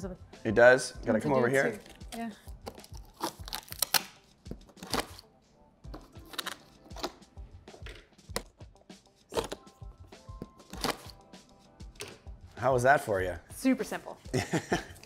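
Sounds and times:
plastic clips snapping: 0:02.6 - 0:05.2.

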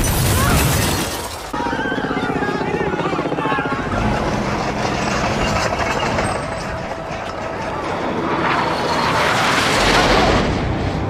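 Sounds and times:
window glass shattering: 0:00.0 - 0:01.6
people shouting and screaming: 0:00.0 - 0:04.1.

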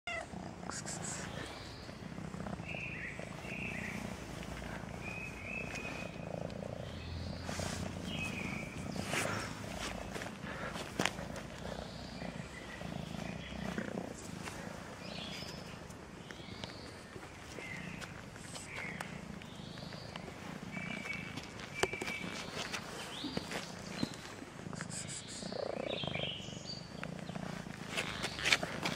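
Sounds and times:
cat chirping calls: 0:00.1 - 0:01.7
cat purring: 0:00.1 - 0:28.9.

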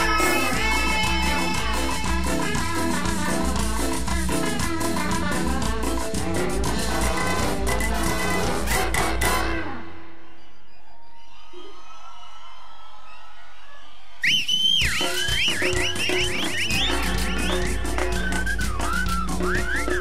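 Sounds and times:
whistle-like lead melody: 0:00.0 - 0:06.0, 0:10.1 - 0:12.0, 0:14.2 - 0:20.0
live cumbia band: 0:00.0 - 0:10.2, 0:14.2 - 0:20.0
crowd noise: 0:00.0 - 0:20.0.

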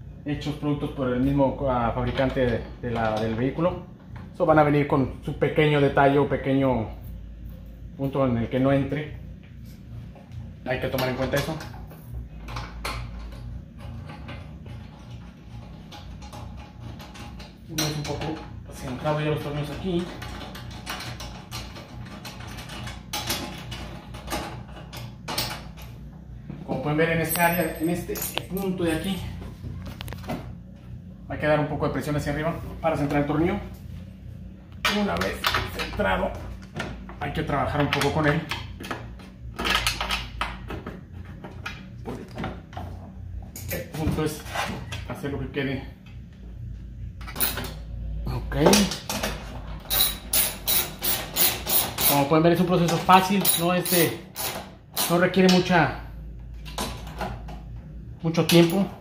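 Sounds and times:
low steady hum: 0:00.0 - 0:59.0
quiet background music: 0:00.0 - 0:59.0
hand ratchet clicking: 0:49.9 - 0:52.3.

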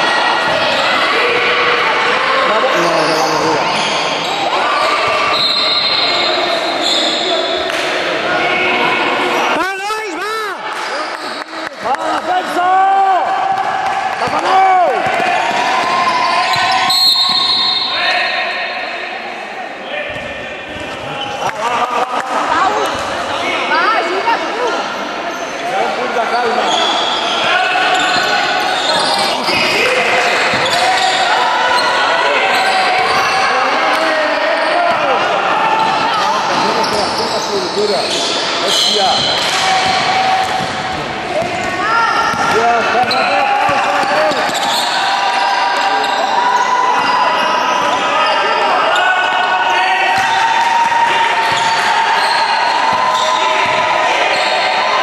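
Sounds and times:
basketball bouncing on court: 0:39.2 - 0:43.2, 0:52.9 - 0:53.9.

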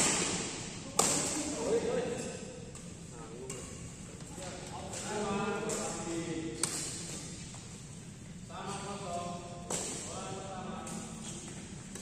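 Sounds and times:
racket hitting shuttlecock: 0:00.0 - 0:01.5, 0:04.9 - 0:07.3, 0:09.6 - 0:10.1.

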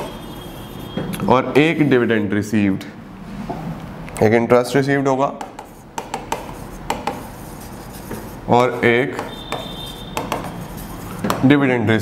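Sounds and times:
chalk squeak: 0:00.0 - 0:01.8, 0:05.7 - 0:11.4
chalk scratching on blackboard: 0:00.0 - 0:02.0, 0:05.4 - 0:11.6.

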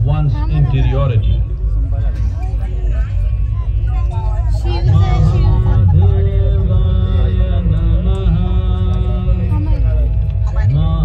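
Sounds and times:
deep low rumble: 0:00.0 - 0:11.0
voice over loudspeakers: 0:00.0 - 0:11.0
music with long held notes: 0:03.9 - 0:11.0.

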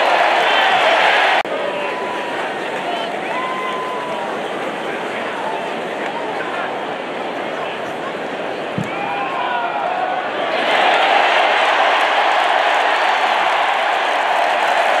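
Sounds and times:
stadium crowd cheering: 0:00.0 - 0:15.0.

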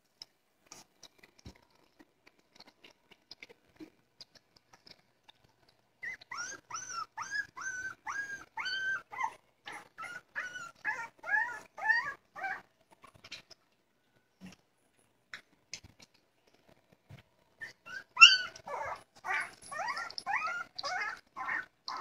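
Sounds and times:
puppies eating wet clicks: 0:00.1 - 0:06.7, 0:12.9 - 0:13.9
dog whines and yelps: 0:06.0 - 0:12.7, 0:17.6 - 0:22.0.

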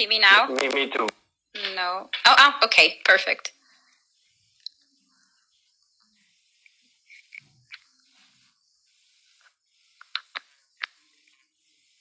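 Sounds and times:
faint audio feed hiss: 0:00.0 - 0:12.0.

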